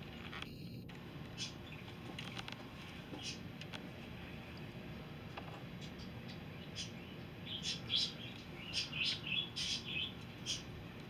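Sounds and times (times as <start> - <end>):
bird chirping: 0.1 - 2.4, 3.1 - 3.5, 5.8 - 11.0.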